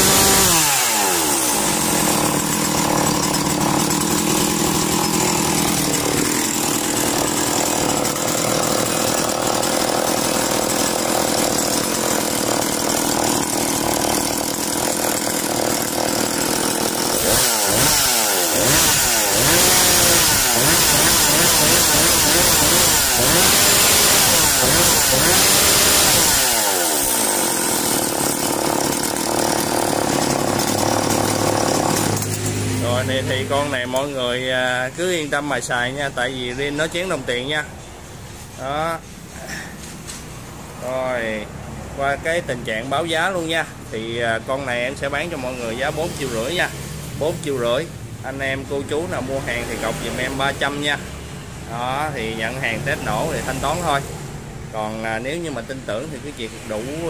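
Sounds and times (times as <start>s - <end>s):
chainsaw engine idling and revving: 0.0s - 37.6s, 38.5s - 57.0s.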